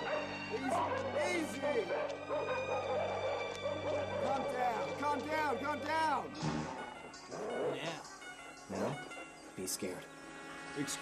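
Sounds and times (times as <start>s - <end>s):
dogs barking: 0.0s - 5.2s, 7.0s - 8.0s
film score music: 0.0s - 11.0s.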